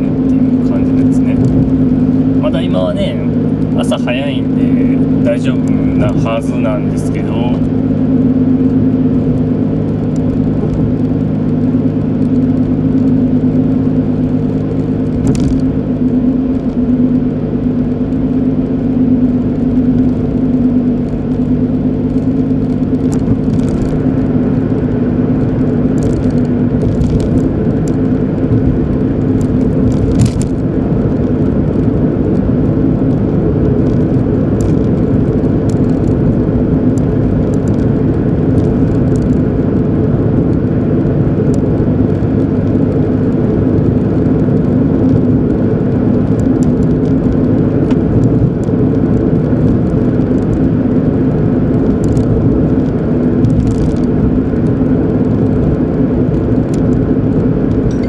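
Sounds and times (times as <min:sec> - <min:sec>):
car engine hum: 0:00.0 - 0:58.0
tyre and road rumble: 0:00.0 - 0:58.0.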